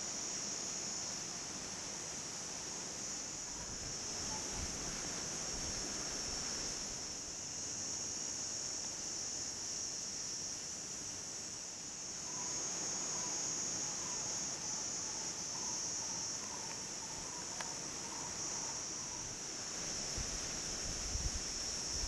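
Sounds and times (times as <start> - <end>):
high-pitched insect chorus: 0.0 - 22.0.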